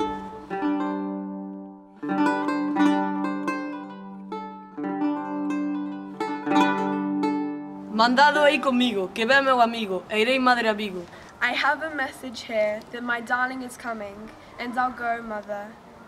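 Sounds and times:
plucked string instrument melody: 0.0 - 10.0.

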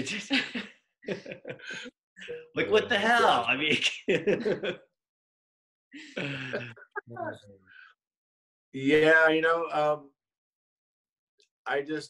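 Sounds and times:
person's throaty vocal sound: 6.2 - 7.4.

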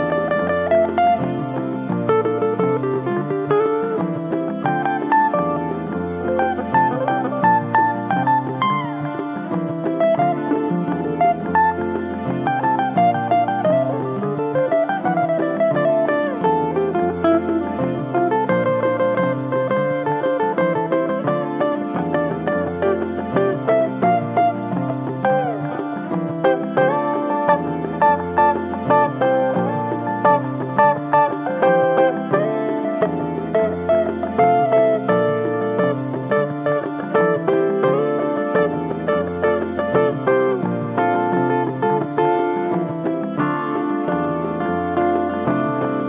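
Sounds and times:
electric guitar playing: 0.0 - 46.0.

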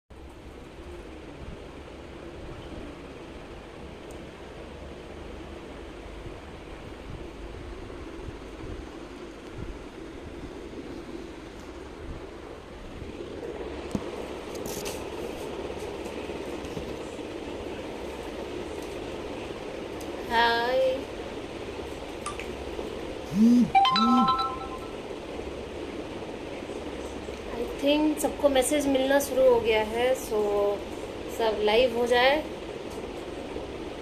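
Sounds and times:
room hum: 0.1 - 34.0.

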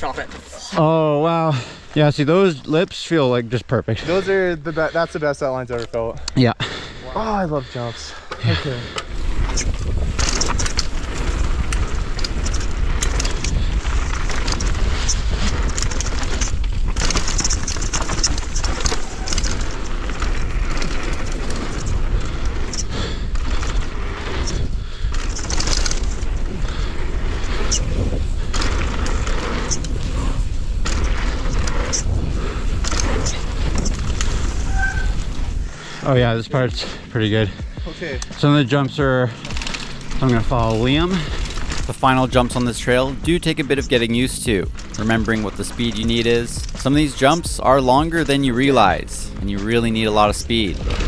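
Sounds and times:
bike tyres on dirt: 0.0 - 51.0
bike chain and frame clatter: 8.1 - 37.0, 38.1 - 51.0
wind on microphone: 9.0 - 36.3.

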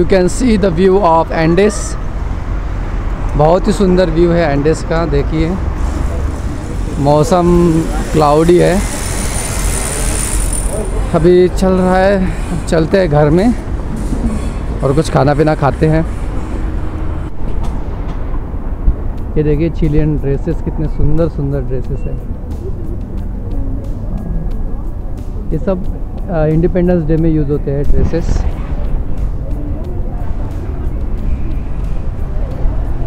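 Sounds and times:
bus passing: 0.0 - 33.0
rumble of passing cars: 0.0 - 33.0
faint background music: 18.7 - 33.0.

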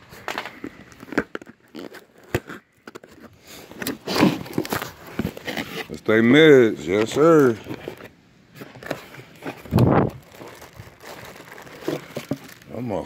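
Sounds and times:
packaging rustling and scraping: 0.0 - 13.0.

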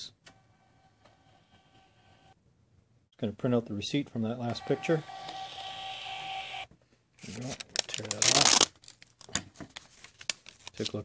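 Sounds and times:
receipt printer printing: 4.4 - 6.7.

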